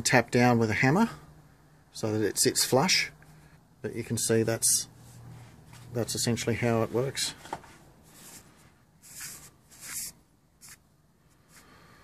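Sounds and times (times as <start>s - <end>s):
hand rubbing metal part: 8.1s - 10.8s.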